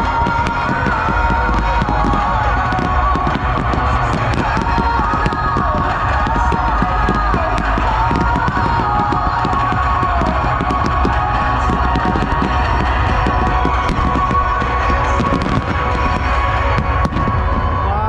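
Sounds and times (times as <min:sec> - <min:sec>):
fireworks bangs and crackles: 0:00.0 - 0:18.0
low rumble: 0:00.0 - 0:18.0
music over loudspeaker: 0:00.0 - 0:18.0.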